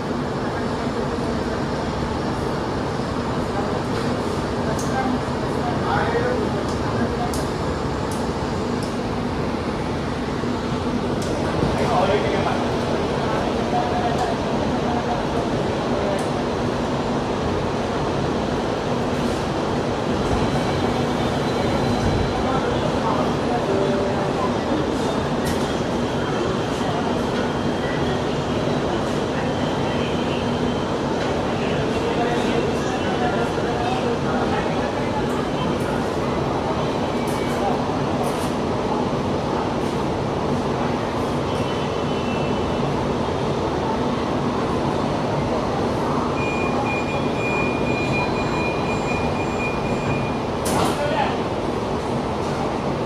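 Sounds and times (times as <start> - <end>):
faint passenger voices: 0.0 - 53.0
train car hum: 0.0 - 53.0
high electronic beeping tone: 46.4 - 50.4.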